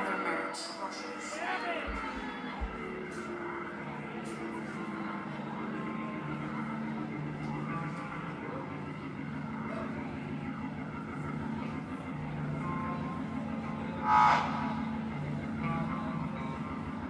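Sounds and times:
rock band playing quietly: 0:01.7 - 0:17.0
loud pitched cry: 0:14.0 - 0:14.8.

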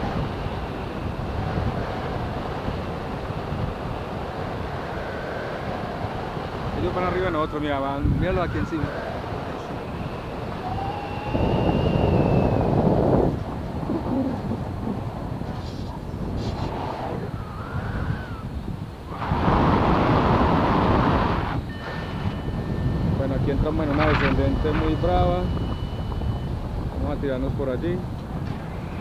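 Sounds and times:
wind rushing over microphone: 0:00.0 - 0:29.0.

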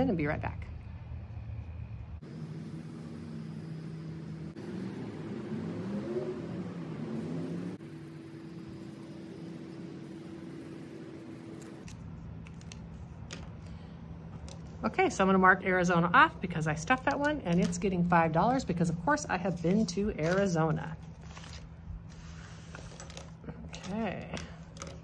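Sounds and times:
low engine-like hum: 0:00.0 - 0:21.9.

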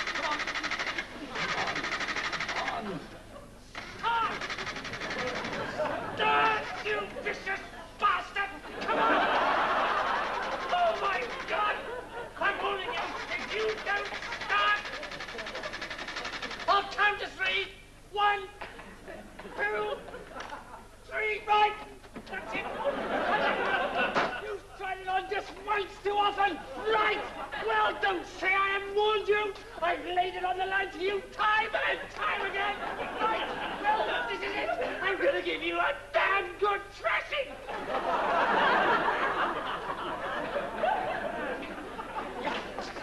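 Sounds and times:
fast even rattle: 0:00.0 - 0:03.0, 0:03.7 - 0:07.6, 0:09.4 - 0:11.8, 0:12.5 - 0:17.2
man talking: 0:02.5 - 0:04.4, 0:05.2 - 0:09.3, 0:10.7 - 0:15.0, 0:16.7 - 0:20.1, 0:21.0 - 0:37.6
man exclaiming: 0:04.0 - 0:04.5, 0:06.2 - 0:09.2, 0:10.7 - 0:14.9, 0:16.7 - 0:18.6, 0:19.5 - 0:20.0, 0:23.4 - 0:33.4.

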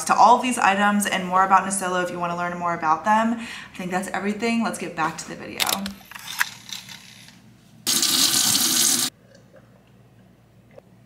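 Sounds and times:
kitchen faucet running: 0:07.9 - 0:09.1.

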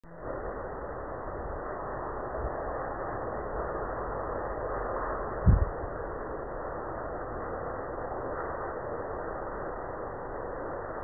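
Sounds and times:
faint low rumbling: 0:00.0 - 0:07.2
steady hiss: 0:00.1 - 0:11.0.

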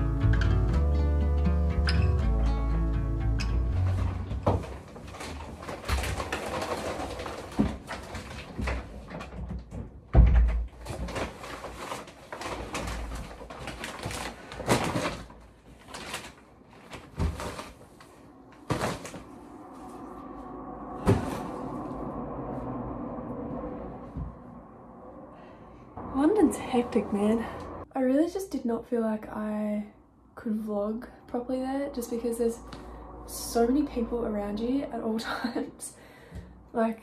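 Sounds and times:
shopping bags rustling: 0:03.8 - 0:09.3, 0:10.7 - 0:19.7
steady low rumble: 0:17.8 - 0:27.9, 0:30.0 - 0:36.8.

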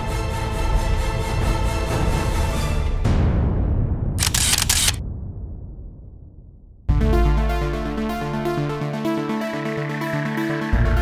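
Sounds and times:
camera shutter clicks: 0:04.2 - 0:05.0.

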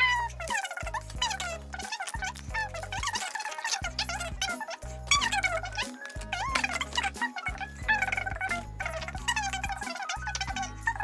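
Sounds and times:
bouncy background music: 0:00.0 - 0:11.0.

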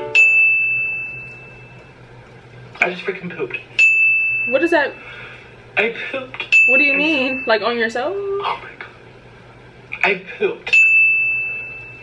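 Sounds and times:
bell-like ding: 0:00.0 - 0:01.7, 0:06.6 - 0:07.6.

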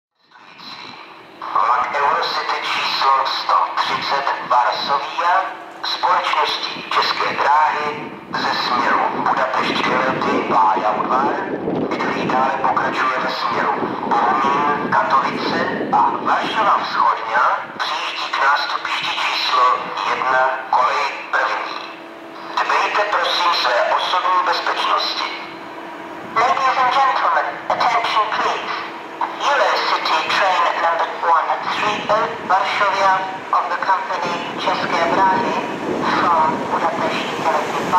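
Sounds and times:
faint steady hum: 0:00.2 - 0:37.9
loudspeaker train announcement: 0:00.2 - 0:37.9.

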